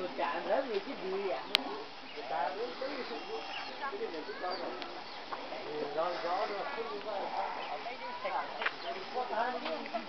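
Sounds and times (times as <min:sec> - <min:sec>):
people talking on the street: 0:00.0 - 0:10.0.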